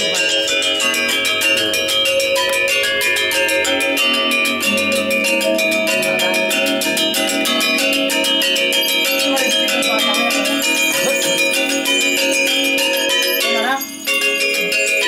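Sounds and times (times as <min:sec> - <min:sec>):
gamelan metallophones struck: 0:00.0 - 0:15.0.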